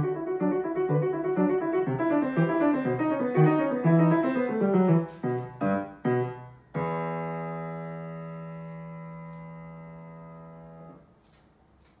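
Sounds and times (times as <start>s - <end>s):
piano chord: 0.0s - 11.0s
faint room noise: 0.0s - 12.0s.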